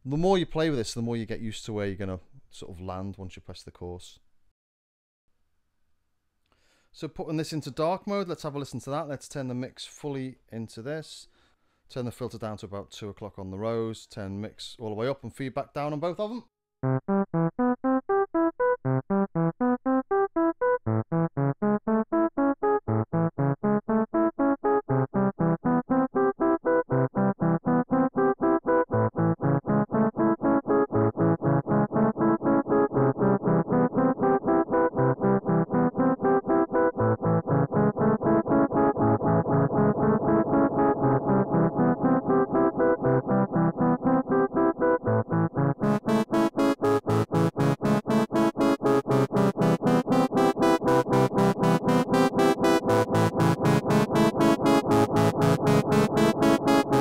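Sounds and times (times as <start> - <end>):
gritty pulsing delayed notes: 28.9 - 57.0.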